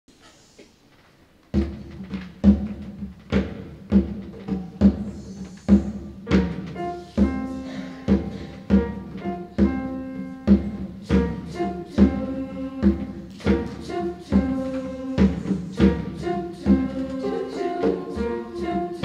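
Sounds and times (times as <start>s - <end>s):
grand piano chords: 5.9s - 19.0s.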